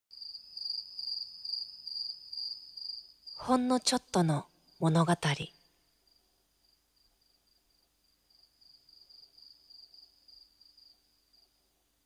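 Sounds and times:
insect trilling: 0.1s - 4.0s.

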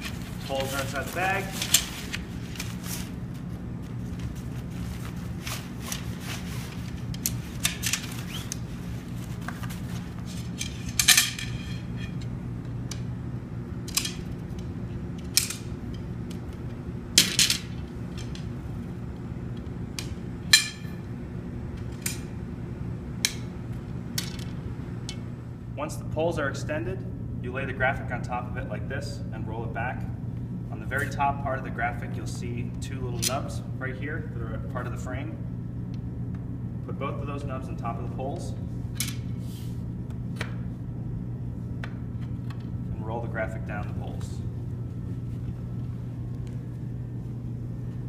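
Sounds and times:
steady low hum: 0.0s - 48.0s.

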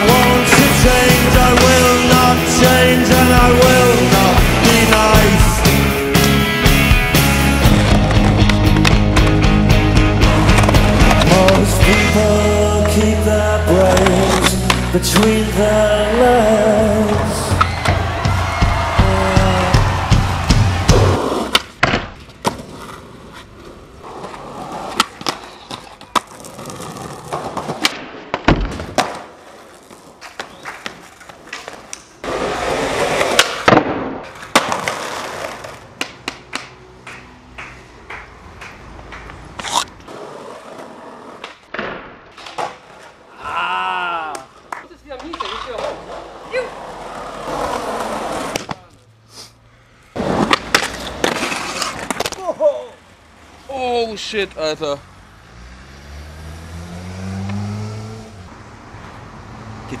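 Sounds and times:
skateboard wheels rolling on asphalt: 0.0s - 43.4s, 44.4s - 49.0s, 50.0s - 60.0s
skateboard clacks: 7.7s - 9.5s, 10.3s - 12.2s, 17.6s - 23.5s, 24.1s - 43.2s, 44.3s - 46.3s, 50.2s - 52.5s
motorcycle engine accelerating past: 55.3s - 58.5s.

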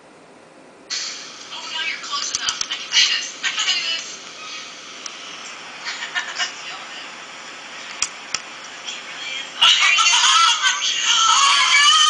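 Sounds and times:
steady hiss: 0.9s - 11.8s
faint voices through phone speaker: 1.5s - 7.2s, 8.6s - 12.0s.

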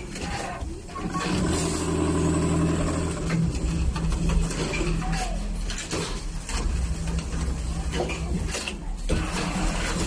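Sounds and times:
sewing machine running: 1.0s - 4.5s.

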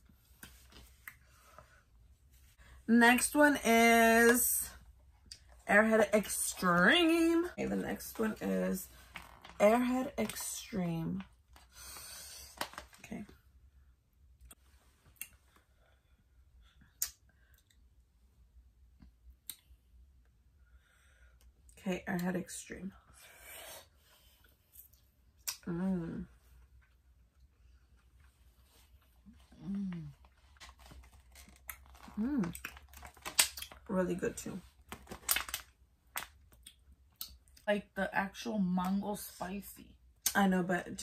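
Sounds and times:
plastic packaging crinkling: 12.6s - 13.1s, 30.3s - 33.8s, 34.8s - 36.3s
person humming mm: 29.5s - 30.2s
plastic container crackling: 30.3s - 33.8s, 34.8s - 36.3s.

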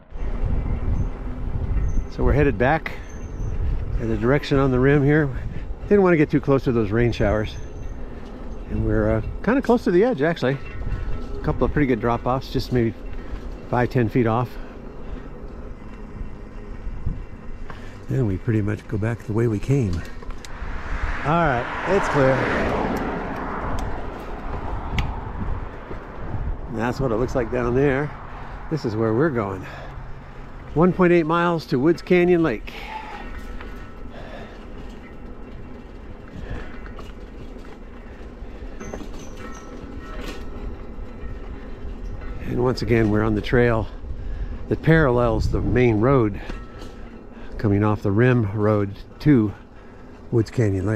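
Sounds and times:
wind rumble on microphone: 0.0s - 18.5s, 19.6s - 29.8s, 32.8s - 47.7s
bike tyres rolling on pavement: 0.0s - 50.9s
wind on microphone: 0.1s - 6.0s, 20.4s - 27.5s.

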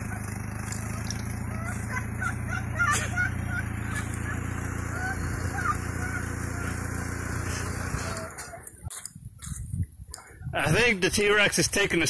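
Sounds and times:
engine idling: 0.0s - 9.0s.

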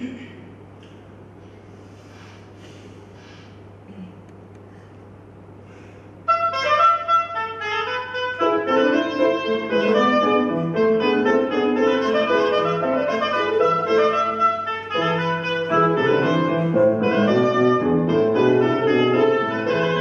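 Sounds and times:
woodwind solo melody: 6.3s - 20.0s
grand piano accompaniment: 8.2s - 20.0s.

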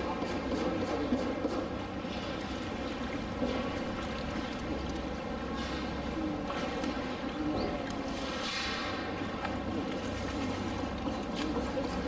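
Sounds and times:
steady background noise: 0.0s - 12.0s
water sloshing and splashing: 0.0s - 12.0s.

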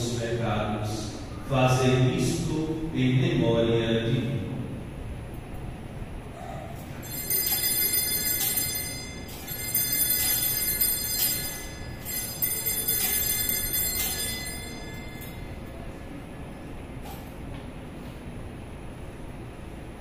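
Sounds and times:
altar bells ringing: 7.0s - 15.9s.

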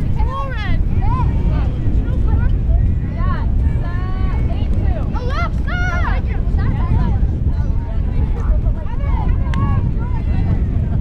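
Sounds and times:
wind buffeting microphone: 0.0s - 11.0s.

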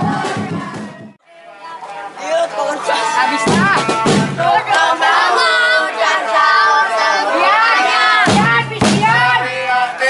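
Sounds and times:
boys singing a chant: 2.2s - 10.0s.

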